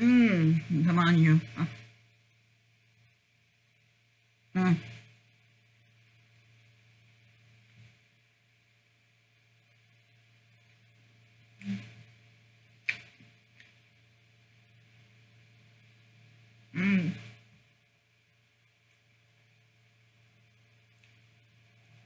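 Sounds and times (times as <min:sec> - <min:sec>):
low room hum: 0:00.0 - 0:22.0
person humming mm: 0:11.6 - 0:12.0, 0:16.7 - 0:17.3.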